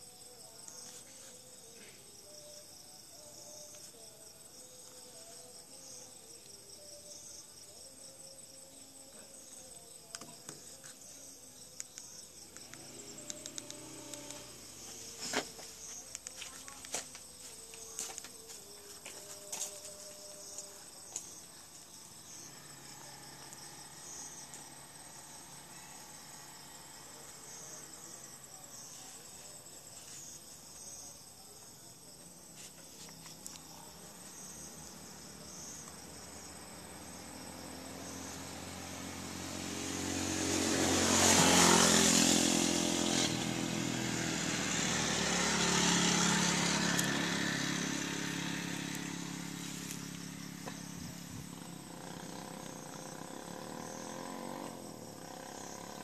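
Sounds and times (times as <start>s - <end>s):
high insect chirping: 0.0s - 56.0s
vehicle engine passing: 36.6s - 56.0s.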